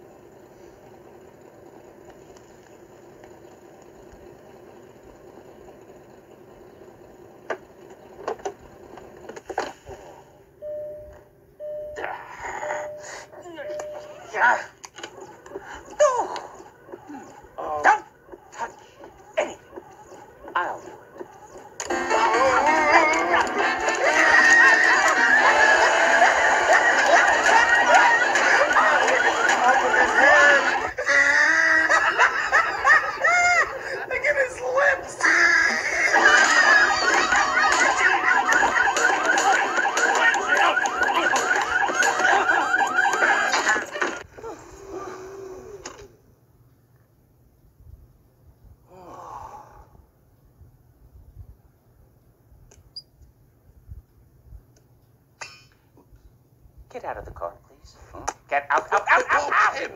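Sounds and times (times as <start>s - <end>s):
cartoon voices shrieking and yelling: 22.1s - 32.4s, 33.0s - 38.4s, 59.1s - 59.9s
cartoon character yelping: 29.9s - 32.2s, 34.8s - 37.6s.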